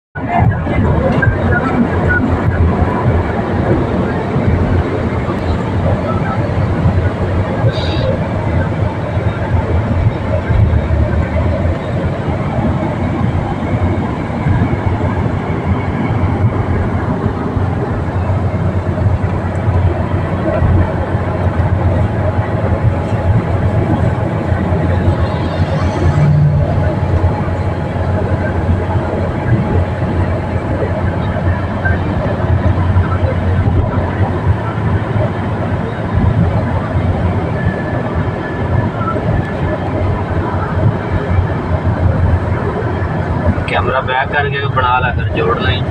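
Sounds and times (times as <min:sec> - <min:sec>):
car cabin road and engine noise: 0:00.2 - 0:45.9.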